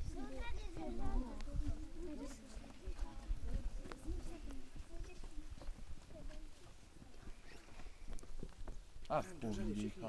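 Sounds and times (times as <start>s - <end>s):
faint murmurs of voices: 0.0s - 10.0s.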